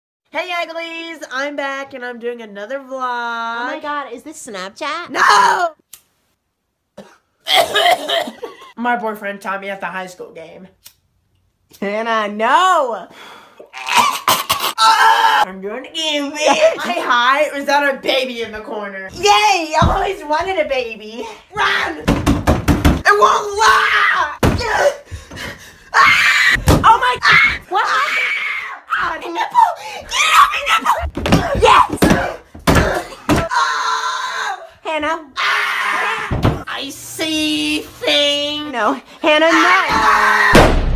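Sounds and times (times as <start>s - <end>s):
boys screaming and yelling: 5.1s - 5.8s, 13.7s - 17.0s, 21.2s - 22.2s, 23.0s - 25.1s, 25.9s - 38.4s, 39.3s - 40.7s
person coughing loudly: 7.0s - 8.6s, 14.0s - 14.8s.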